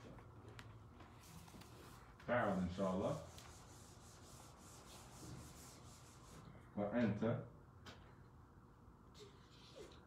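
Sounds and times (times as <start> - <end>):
eraser rubbing on whiteboard: 3.1 - 6.5.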